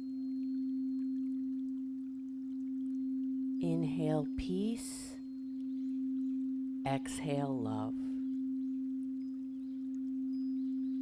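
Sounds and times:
singing bowl ringing: 0:00.0 - 0:11.0.

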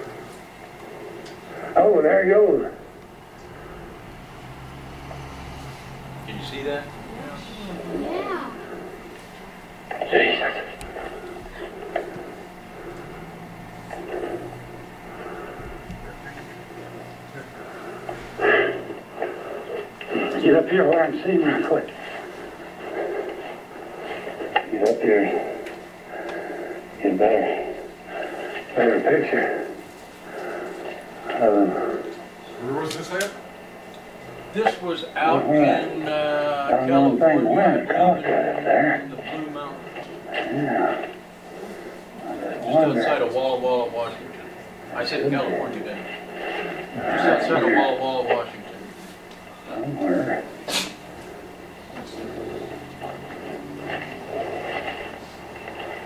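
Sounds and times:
indistinct voices: 0:00.0 - 0:33.3, 0:34.2 - 0:56.0
steady low hum: 0:00.0 - 0:56.0
person talking through speaker: 0:06.3 - 0:08.7.

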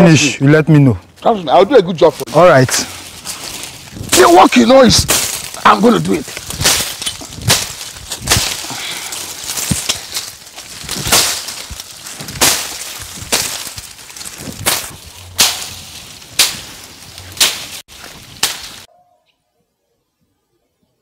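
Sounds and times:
machete swishing through bush: 0:03.0 - 0:18.9.

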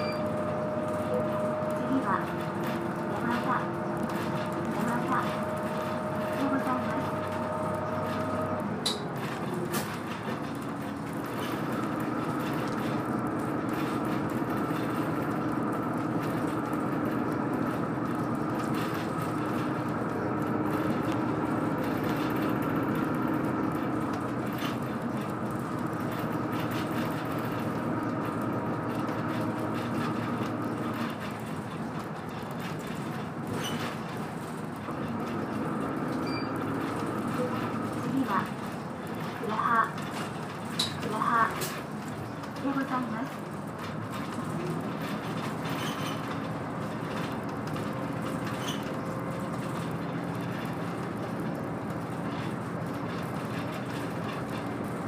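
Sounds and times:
bus engine whine: 0:00.0 - 0:55.0
road noise: 0:00.0 - 0:55.0
rattles: 0:02.1 - 0:55.0.

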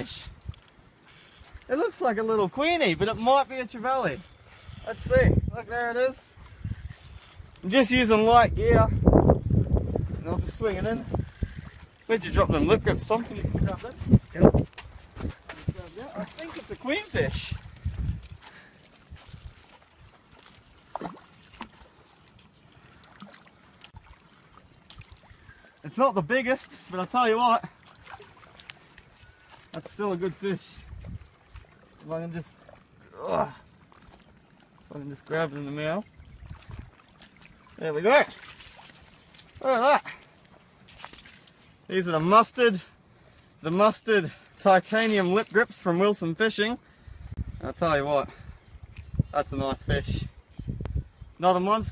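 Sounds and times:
water sloshing and splashing: 0:00.0 - 0:05.2, 0:09.7 - 0:42.4, 0:44.3 - 0:45.9.

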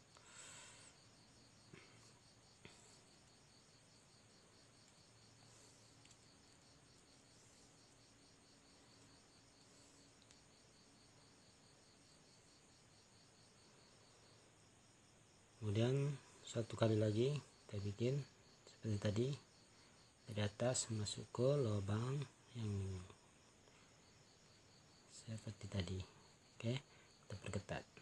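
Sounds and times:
crickets chirping: 0:00.0 - 0:28.0.

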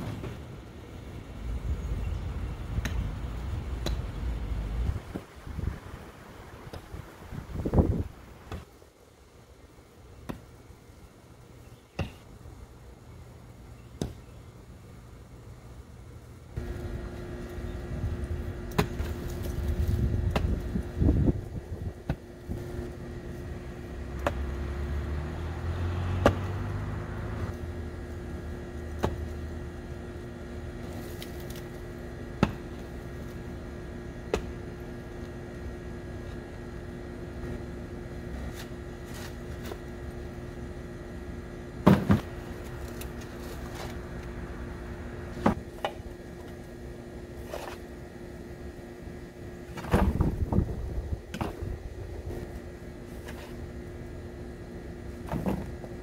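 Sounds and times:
background hum: 0:00.0 - 0:56.0.

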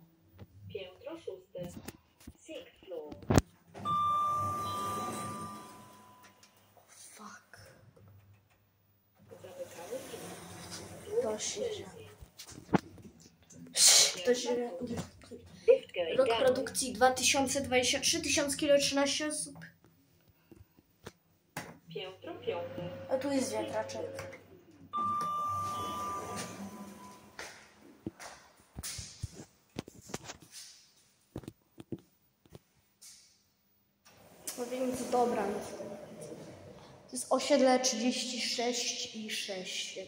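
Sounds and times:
lift arrival chime: 0:03.8 - 0:06.6, 0:22.4 - 0:27.4.

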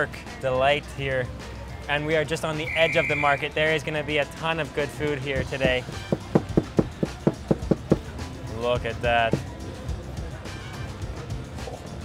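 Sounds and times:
knife chopping on plastic board: 0:05.6 - 0:08.1.

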